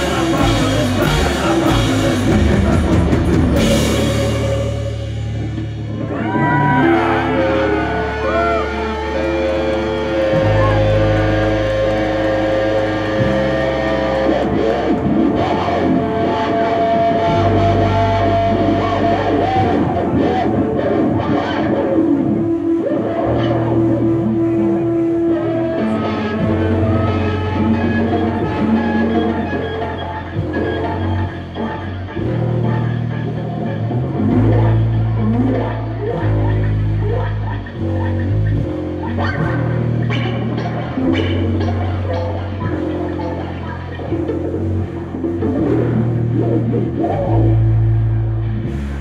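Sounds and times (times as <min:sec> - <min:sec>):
low electric guitar chords: 0:00.0 - 0:49.0
rock band playing: 0:00.0 - 0:49.0.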